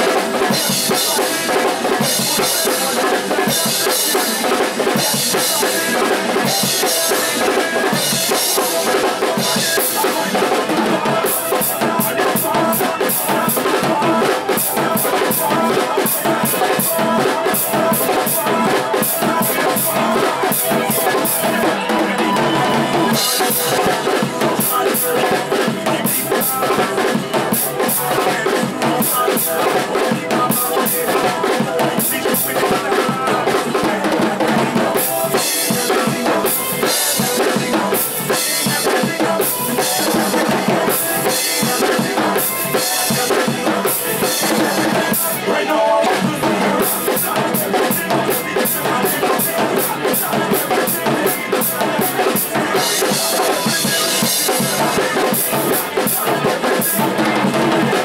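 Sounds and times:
drum kit playing: 0.0s - 58.0s
recorded backing track: 0.0s - 58.0s.

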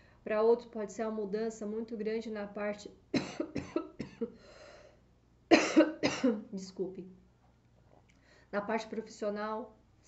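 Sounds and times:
woman coughing: 3.1s - 4.4s, 5.5s - 6.5s
breathy exhale: 4.4s - 5.0s.

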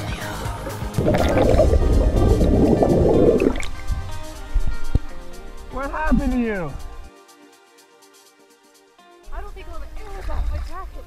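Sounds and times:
diver exhaling bubbles underwater: 1.0s - 3.9s.

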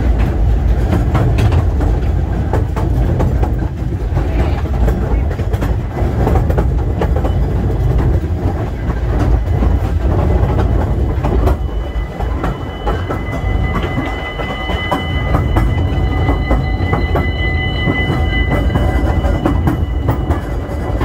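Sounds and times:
high wheel squeal on rail: 0.0s - 21.0s
rail clicks: 0.0s - 21.0s
steam train rumbling: 0.0s - 21.0s.

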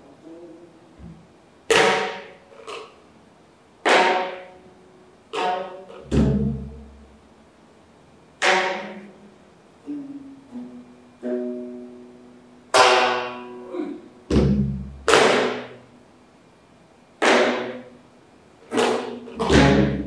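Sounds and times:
plucked zither notes: 3.8s - 7.0s, 8.4s - 15.9s.

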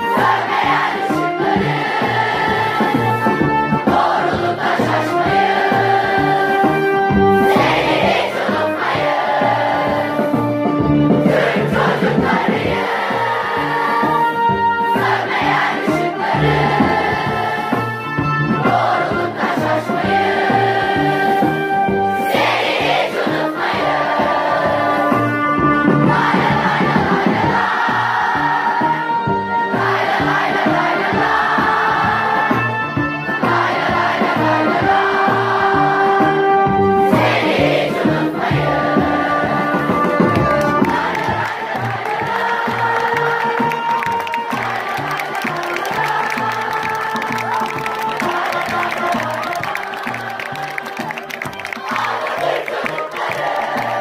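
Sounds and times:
children singing in unison: 0.0s - 10.6s, 11.2s - 18.0s, 18.6s - 32.8s, 33.4s - 54.0s
music with steady beat: 0.0s - 54.0s.

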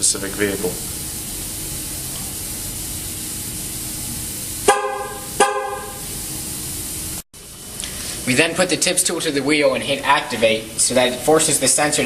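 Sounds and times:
steady hiss: 0.0s - 12.0s
car horn chirping: 4.6s - 6.0s.

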